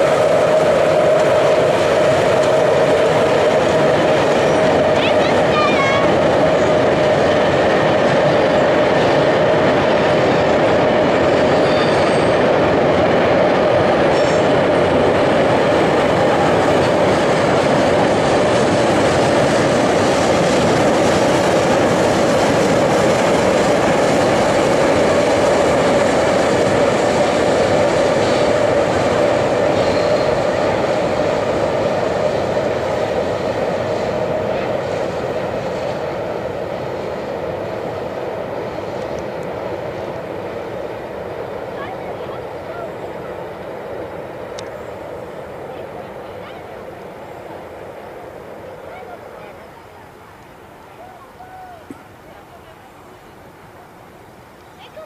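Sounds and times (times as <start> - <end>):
train running on track: 0.0 - 55.0.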